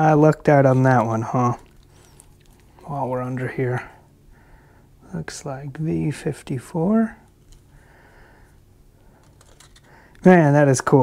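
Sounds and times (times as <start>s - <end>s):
faint handling sounds: 0.3s - 4.2s, 7.2s - 10.5s.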